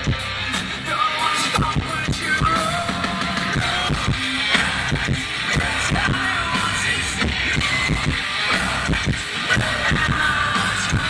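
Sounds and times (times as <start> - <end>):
distorted electric guitars: 0.0 - 11.0
live metal band playing: 0.0 - 11.0
pounding drum beat: 0.0 - 11.0.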